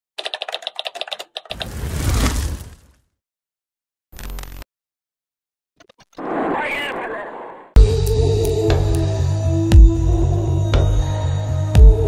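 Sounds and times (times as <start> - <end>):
rapid typewriter-like clicking: 0.2 - 1.5.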